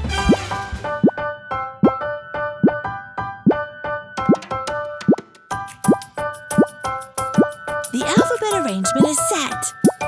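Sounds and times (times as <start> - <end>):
playful synth children's music: 0.2 - 10.0.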